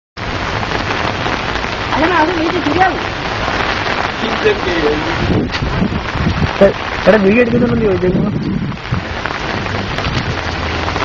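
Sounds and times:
steady rush of water: 0.2 - 11.0.

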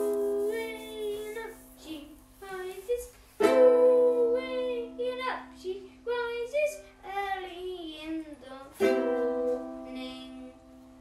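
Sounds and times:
ukulele strumming: 0.0 - 2.8, 3.4 - 5.5, 8.7 - 10.8.

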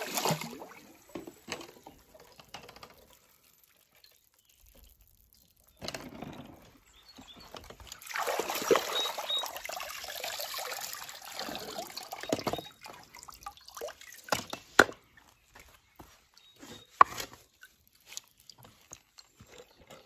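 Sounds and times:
pool water sloshing and splashing: 0.0 - 14.9, 16.6 - 20.0
water dripping and trickling: 0.0 - 20.0.

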